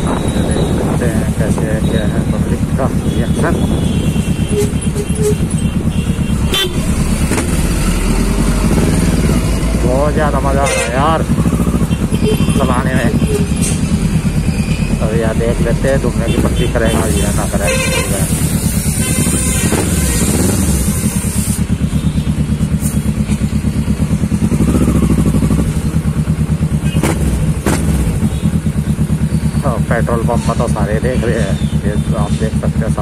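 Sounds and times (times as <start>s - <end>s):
motorcycle engine idling: 0.0s - 33.0s.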